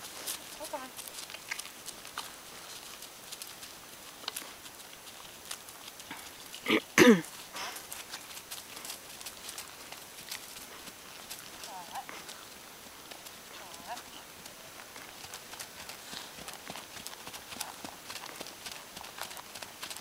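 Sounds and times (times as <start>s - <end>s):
pony hoofbeats on grass: 0.0s - 20.0s.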